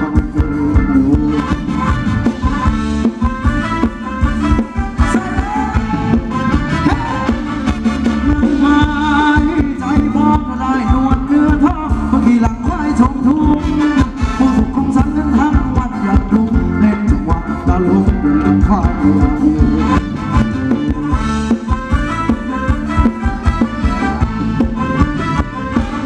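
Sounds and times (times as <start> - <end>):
live band dance music: 0.0 - 26.0.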